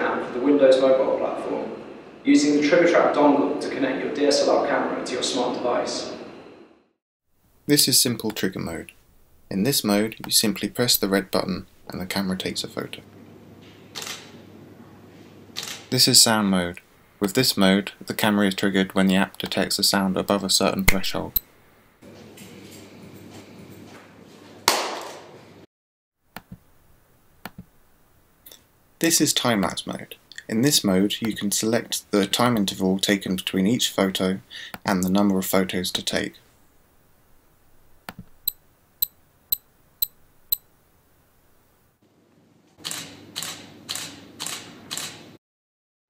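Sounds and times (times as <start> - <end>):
camera shutter firing: 14.0 - 14.3
loud sharp hand clap: 24.7 - 25.3.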